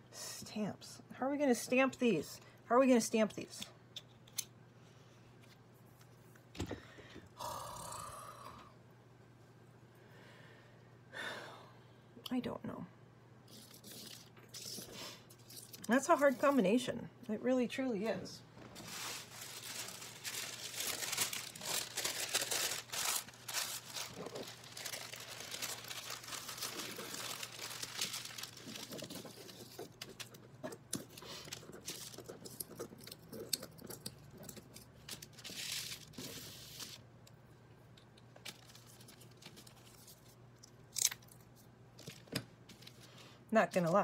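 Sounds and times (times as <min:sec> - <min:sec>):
paper crinkling and rustling: 0:13.5 - 0:16.6, 0:18.6 - 0:37.0, 0:38.3 - 0:43.2.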